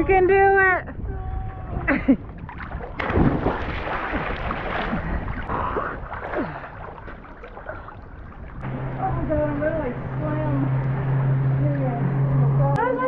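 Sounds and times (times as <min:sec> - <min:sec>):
water sloshing: 0:01.7 - 0:13.0
steady low hum: 0:04.7 - 0:13.0.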